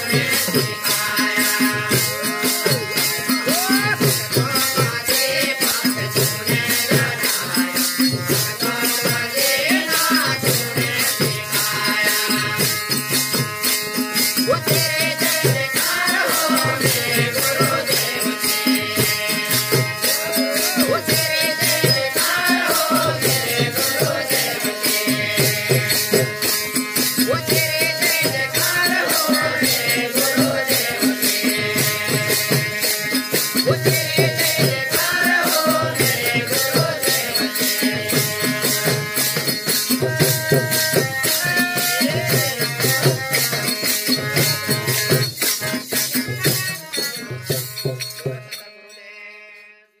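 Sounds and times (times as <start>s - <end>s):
dholak drum beats: 0.0s - 49.0s
held harmonium note: 0.0s - 50.0s
jingling hand percussion: 0.0s - 50.0s.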